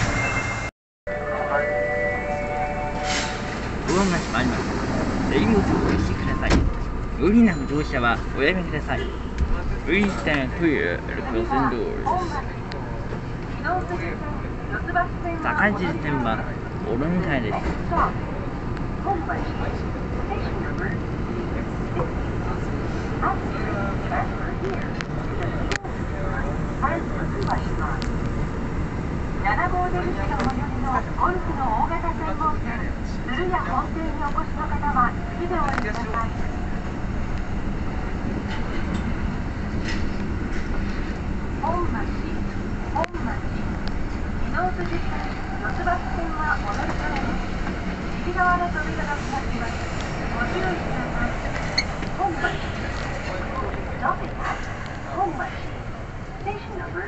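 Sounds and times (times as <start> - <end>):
subway train rumbling in tunnel: 0.0 - 57.0.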